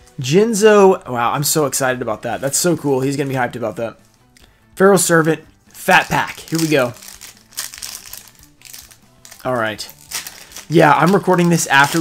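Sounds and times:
faint background music: 0:00.0 - 0:12.0
foil wrapper crinkling: 0:05.9 - 0:12.0.

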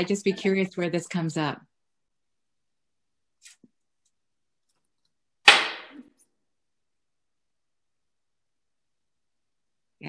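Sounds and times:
sharp knock: 0:05.5 - 0:06.0.

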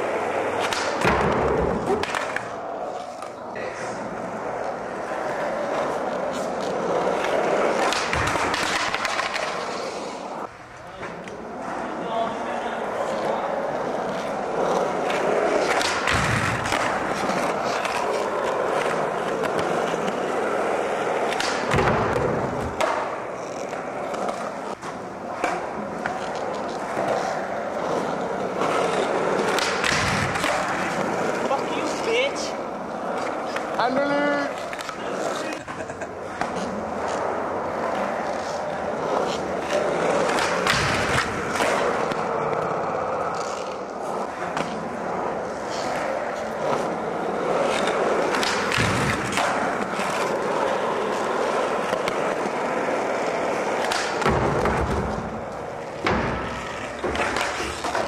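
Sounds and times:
skateboard wheels rolling on concrete: 0:00.0 - 0:58.0
skateboard thumping on landing: 0:00.6 - 0:02.4, 0:15.6 - 0:17.0, 0:21.3 - 0:23.1.

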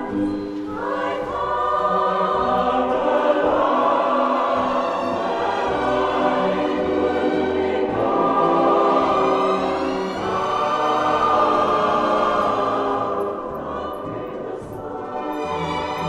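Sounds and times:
choir singing held chords: 0:00.0 - 0:16.0
orchestral strings: 0:00.0 - 0:16.0.

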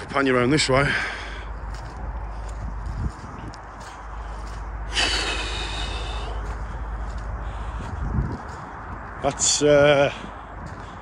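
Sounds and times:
wind buffeting microphone: 0:00.0 - 0:11.0
breath through the nose: 0:03.9 - 0:08.1.

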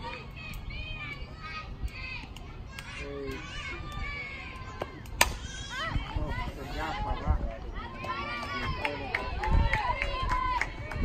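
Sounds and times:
girls calling out and cheering: 0:00.0 - 0:11.0.

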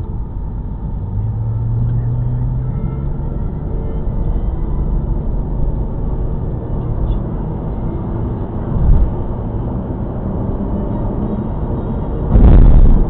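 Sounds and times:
car engine and tyre rumble: 0:00.0 - 0:13.0.

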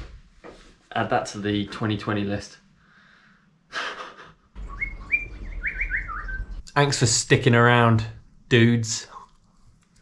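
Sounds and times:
high chirping whistle notes: 0:04.6 - 0:06.6.

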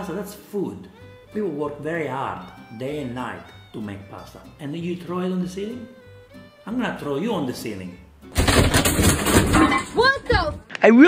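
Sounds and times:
ceiling board breaking and debris crashing: 0:08.3 - 0:10.6.

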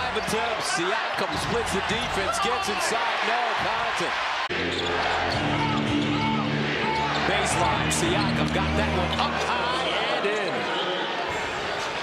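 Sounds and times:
crowd noise: 0:00.0 - 0:12.0
sneakers squeaking: 0:04.7 - 0:09.4.

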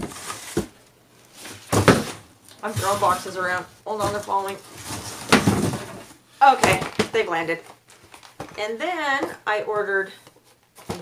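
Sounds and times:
boxes falling thump: 0:01.4 - 0:03.1, 0:04.0 - 0:07.2
cardboard boxes knocking: 0:01.6 - 0:03.3, 0:03.9 - 0:07.2.

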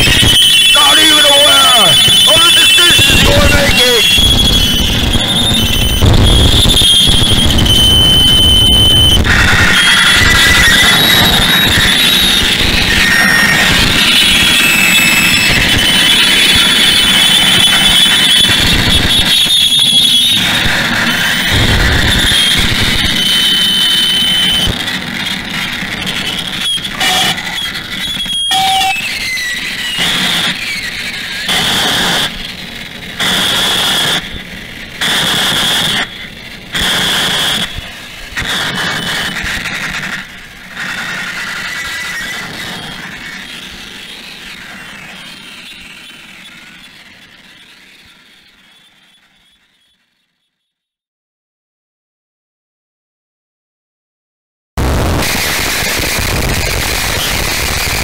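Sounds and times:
high wavering squealing tones: 0:00.0 - 0:34.9, 0:35.7 - 0:49.9
harsh noise wall: 0:00.0 - 0:49.8, 0:54.8 - 0:58.0.

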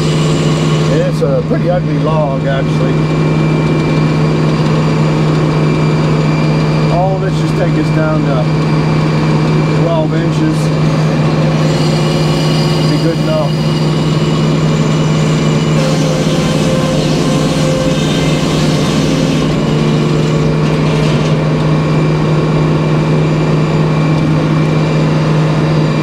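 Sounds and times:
power unit humming: 0:00.0 - 0:26.0
circular saw blade spinning: 0:11.1 - 0:21.6.

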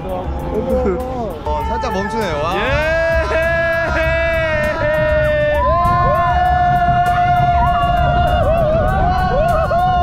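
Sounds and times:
ride rumbling: 0:00.0 - 0:10.0
wind on microphone: 0:00.0 - 0:10.0
riders screaming and yelling: 0:00.2 - 0:10.0.

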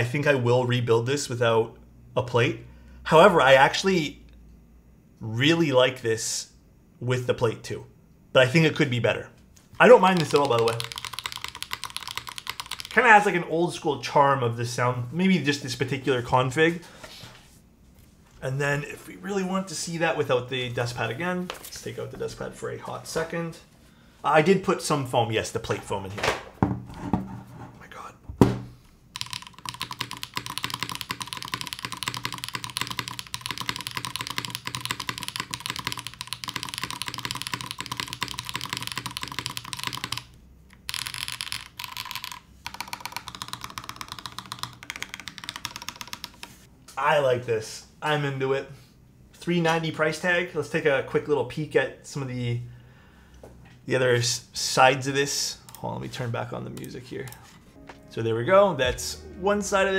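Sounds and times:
mechanical keyboard fast typing: 0:09.8 - 0:13.3, 0:29.2 - 0:46.7.

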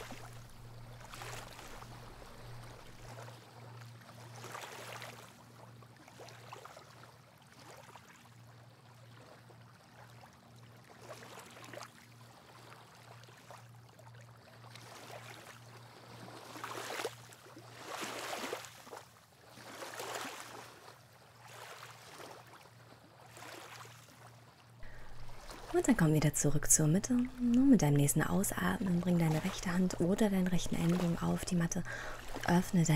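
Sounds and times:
waves lapping on shore: 0:00.0 - 0:32.9.

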